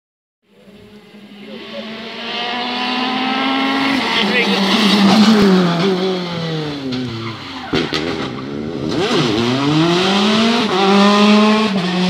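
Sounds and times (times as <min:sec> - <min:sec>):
rally car engine revving: 0:00.6 - 0:12.0.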